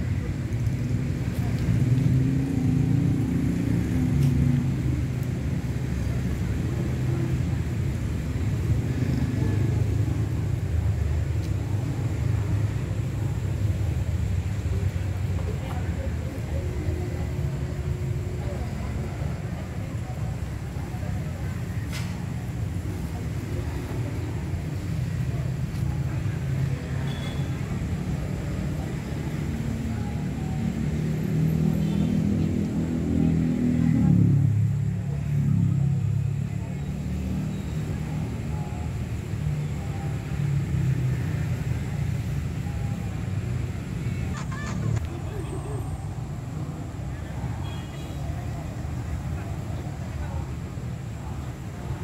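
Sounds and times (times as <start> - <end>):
murmuring voices: 0.0 - 52.0.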